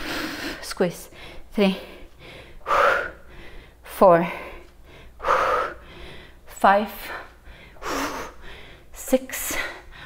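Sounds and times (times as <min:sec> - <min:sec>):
woman breathing heavily: 0:00.0 - 0:10.0.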